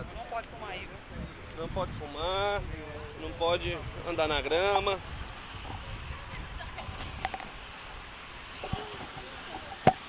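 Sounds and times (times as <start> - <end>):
faint chatter of passers-by: 0.0 - 7.9.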